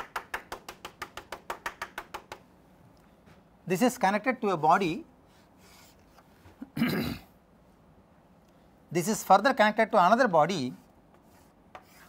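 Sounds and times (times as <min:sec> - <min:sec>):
chalk tapping on a blackboard: 0:00.0 - 0:02.5, 0:11.1 - 0:12.0.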